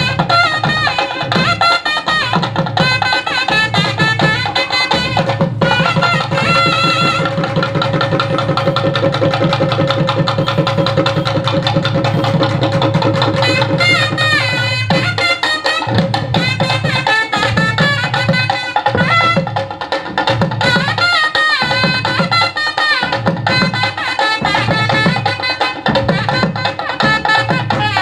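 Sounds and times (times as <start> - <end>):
drum beaten in fast strokes: 0.0 - 28.0
wind instrument melody: 0.0 - 28.0.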